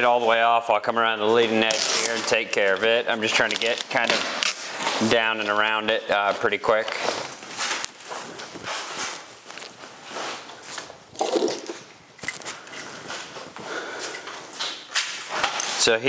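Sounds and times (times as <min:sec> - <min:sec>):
stiff fabric rustling and crackling: 0:03.1 - 0:15.9
footsteps on floor: 0:06.2 - 0:15.8.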